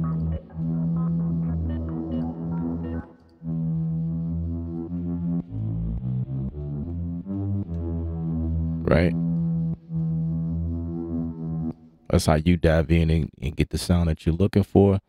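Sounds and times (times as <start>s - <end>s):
low held synth notes: 0.0s - 13.3s.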